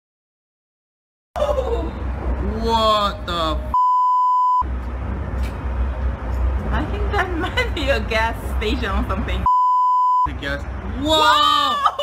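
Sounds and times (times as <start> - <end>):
high-pitched censor bleep: 3.7 - 4.7, 9.5 - 10.3.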